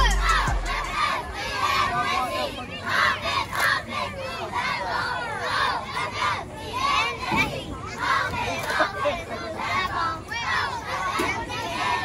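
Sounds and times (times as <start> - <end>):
girls shouting a cheer: 0.0 - 8.7.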